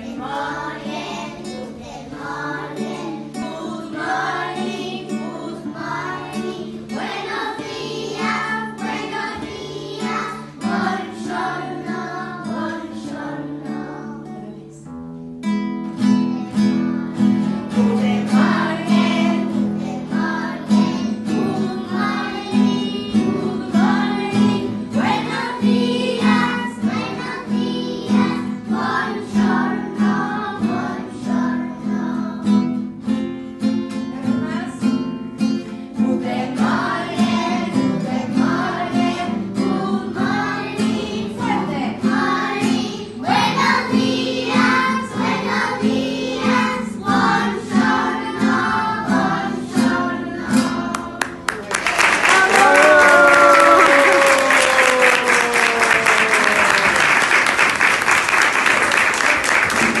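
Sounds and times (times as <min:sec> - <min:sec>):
children singing: 0:00.0 - 0:14.5, 0:16.2 - 0:32.7, 0:36.0 - 0:51.4
strummed acoustic guitar: 0:00.0 - 0:51.6
audience applause: 0:51.2 - 1:00.0
person cheering: 0:52.2 - 0:57.3.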